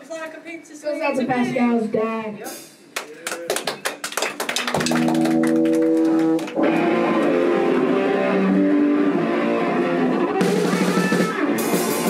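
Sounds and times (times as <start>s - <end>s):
hand claps: 2.9s - 6.9s
electric guitar chord ringing: 5.0s - 12.0s.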